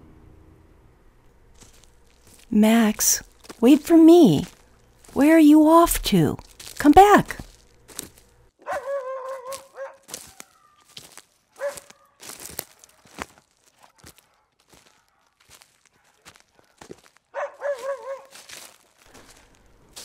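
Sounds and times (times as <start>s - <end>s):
footsteps crunching in snow: 1.5s - 20.0s
dog whining: 8.6s - 10.8s.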